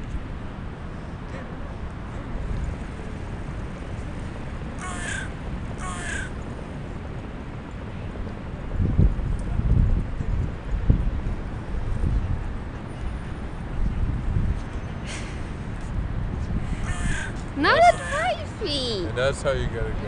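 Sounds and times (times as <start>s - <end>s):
harsh bird calls: 16.6s - 18.4s.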